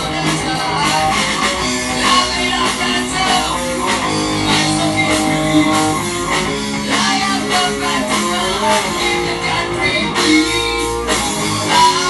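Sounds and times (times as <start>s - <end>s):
bass guitar: 0.0s - 12.0s
drums: 0.0s - 12.0s
electric guitar: 0.0s - 12.0s.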